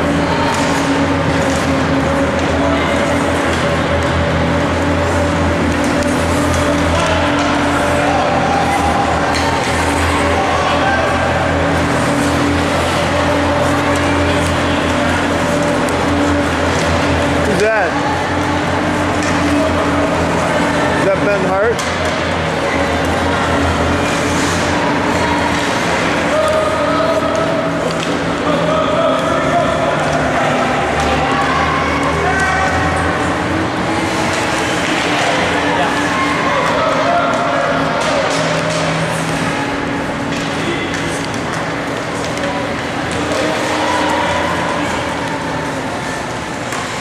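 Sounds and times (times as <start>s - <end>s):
skates on ice: 0.0s - 31.4s
distant spectators' voices: 0.0s - 47.0s
hockey sticks clicking: 0.0s - 47.0s
steady low hum: 0.0s - 47.0s.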